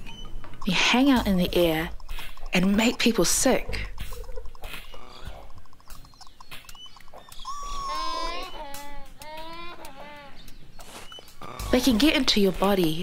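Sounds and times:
faint clicks: 0.0 - 12.8
cartoon voice wavering sounds: 7.5 - 10.3.

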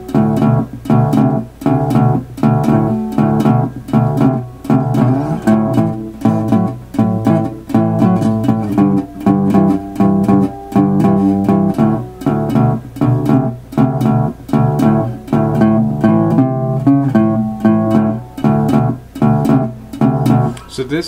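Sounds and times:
slide guitar shuffle: 0.0 - 21.0.

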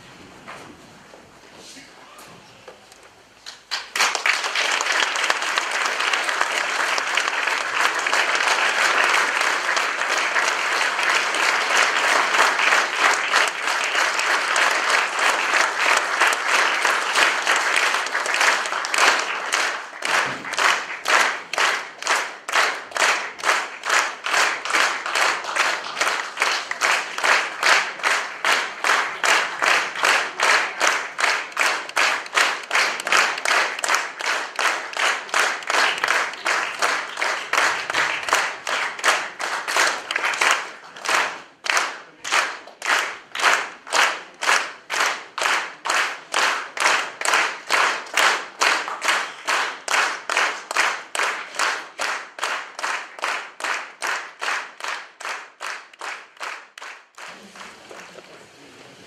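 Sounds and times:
audience applause: 2.1 - 59.0.

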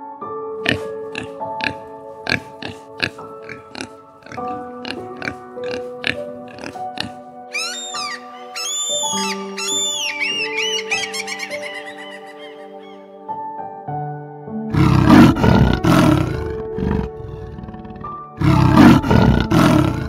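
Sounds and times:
soft background music: 0.0 - 20.0
pig grunting: 0.6 - 7.2, 14.7 - 20.0
high arching bird calls: 7.5 - 13.1.

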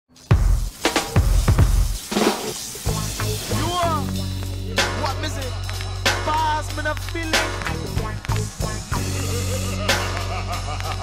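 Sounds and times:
drum hit: 0.3 - 2.6
short bass notes: 7.3 - 9.8.

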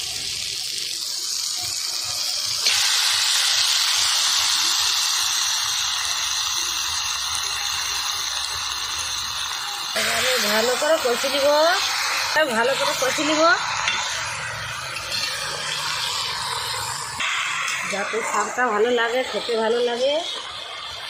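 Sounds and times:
food sizzling in hot oil: 0.0 - 21.0.

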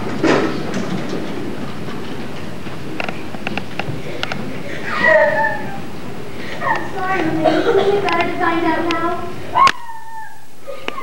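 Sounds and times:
person speaking: 4.8 - 10.2
high-pitched vocal cry: 4.9 - 5.8, 9.5 - 11.0.

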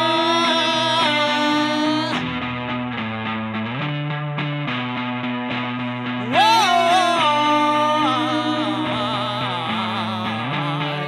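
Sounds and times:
electric guitar playing: 0.0 - 11.0.

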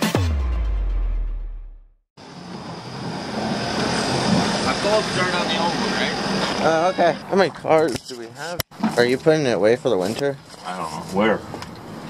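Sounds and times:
music: 0.0 - 2.0
outdoor rushing noise: 2.2 - 6.7.

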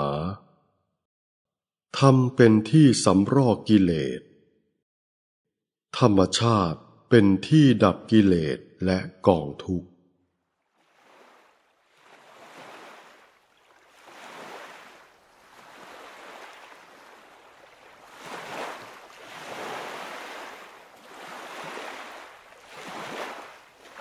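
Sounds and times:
small waves lapping on shore: 10.4 - 24.0.

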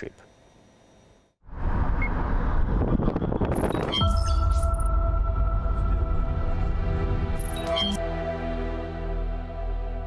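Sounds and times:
car road and wind noise: 1.5 - 4.9
music with sustained tones: 4.7 - 10.0.

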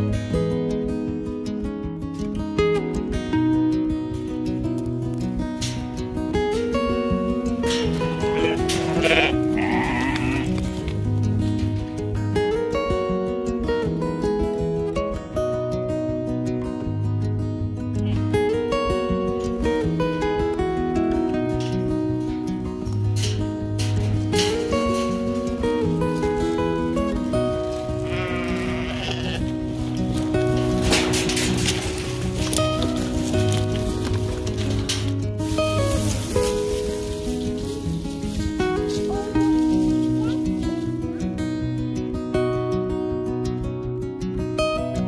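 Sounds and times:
background music: 0.0 - 45.0
sheep bleating: 7.8 - 10.8, 27.7 - 29.8.

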